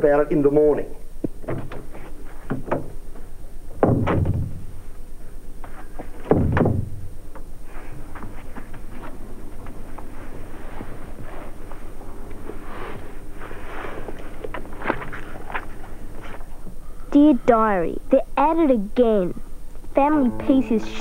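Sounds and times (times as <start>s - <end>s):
doors thudding shut: 3.8s - 4.7s, 6.2s - 7.0s.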